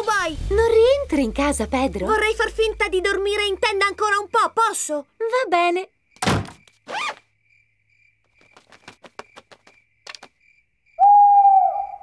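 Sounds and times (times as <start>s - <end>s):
thunk: 6.2s - 6.6s
faint high chirping: 8.4s - 12.0s
owl hooting: 11.0s - 12.0s.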